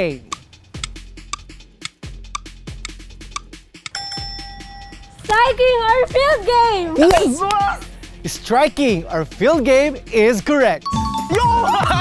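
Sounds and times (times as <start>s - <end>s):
ticking countdown beat: 0.0s - 12.0s
electronic bell tone: 4.0s - 5.2s, 10.8s - 11.4s.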